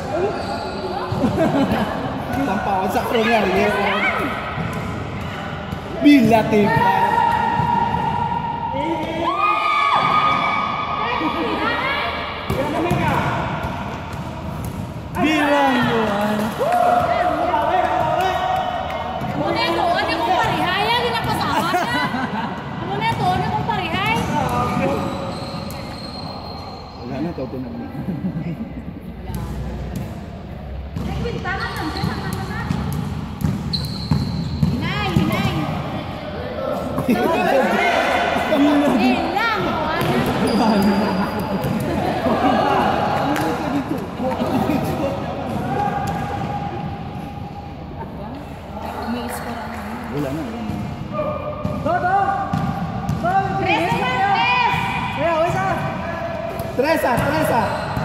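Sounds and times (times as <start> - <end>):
players' voices: 0.0 - 58.0
basketball bouncing on court: 30.9 - 35.8, 50.6 - 54.1.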